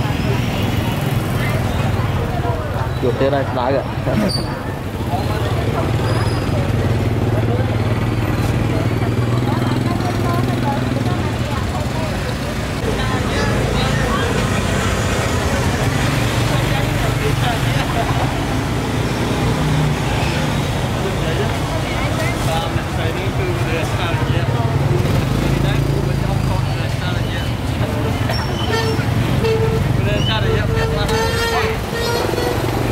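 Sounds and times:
motorbike engines: 0.0 - 32.9
people talking: 0.0 - 32.9.

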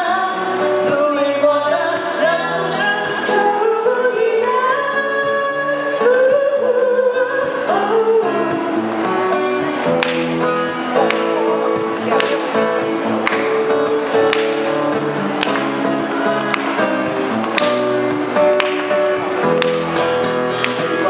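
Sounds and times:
acoustic guitar strumming: 0.0 - 21.0.

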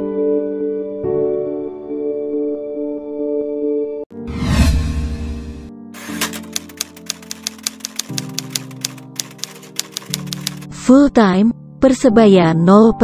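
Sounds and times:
whoosh with low rumble: 4.2 - 5.7
typewriter key clicks: 6.0 - 10.7.

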